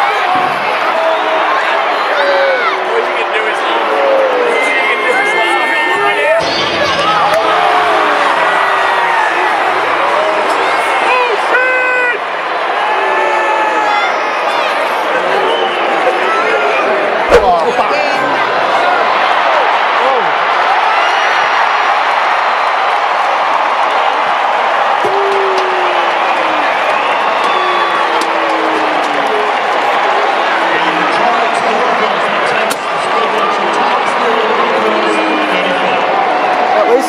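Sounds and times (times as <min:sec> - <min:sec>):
crowd voices din: 0:00.0 - 0:37.0.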